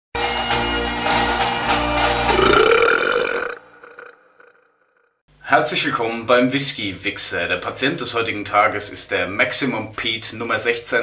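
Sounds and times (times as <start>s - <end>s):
bagpipe music: 0.2s - 2.3s
long loud burp: 2.3s - 5.2s.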